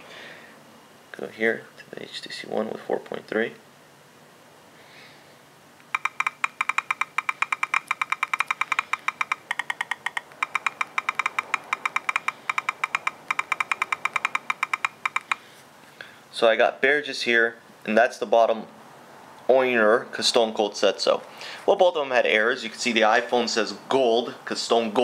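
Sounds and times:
on-screen keyboard clicks: 5.8 - 15.4.

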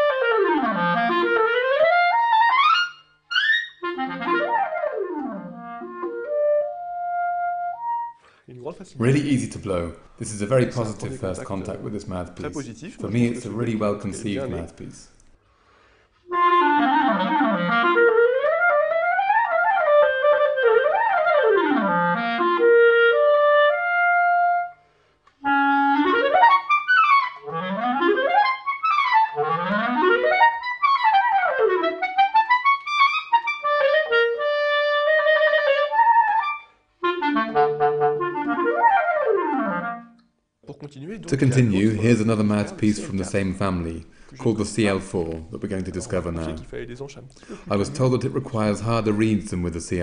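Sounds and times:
clarinet playing fast scales: 0.0 - 8.2, 16.3 - 24.8, 25.4 - 40.2.

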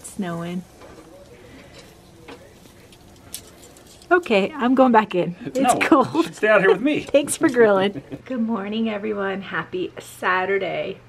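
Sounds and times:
propane grill hissing: 0.0 - 10.9.

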